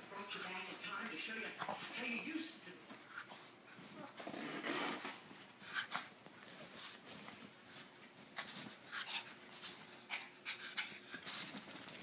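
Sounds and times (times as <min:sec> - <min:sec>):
dog breathing and snuffling: 0:02.9 - 0:12.0.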